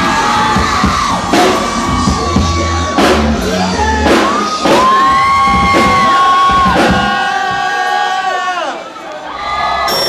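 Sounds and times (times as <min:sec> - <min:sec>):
live industrial rock band: 0:00.0 - 0:07.9
crowd yelling: 0:00.0 - 0:10.0.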